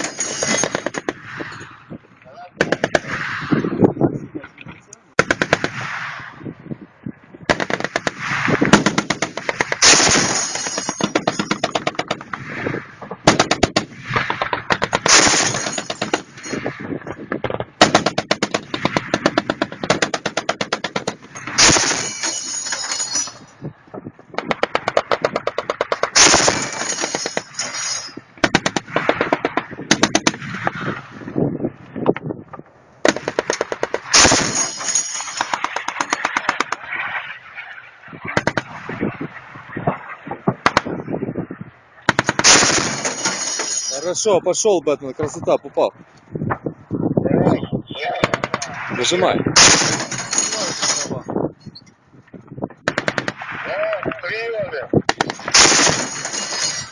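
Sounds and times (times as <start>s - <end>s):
autocannon firing bursts: 5.2s - 5.8s, 7.5s - 12.4s, 13.2s - 16.4s, 17.7s - 22.3s, 24.4s - 27.6s, 28.4s - 30.5s, 33.0s - 36.8s, 42.1s - 43.4s, 49.6s - 50.6s, 52.8s - 53.6s, 55.0s - 56.4s.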